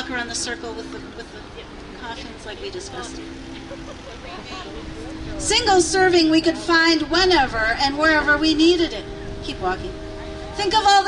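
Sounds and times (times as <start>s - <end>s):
faint voices: 0.0s - 11.0s
outdoor background noise: 0.0s - 11.0s
steady low hum: 0.0s - 11.0s.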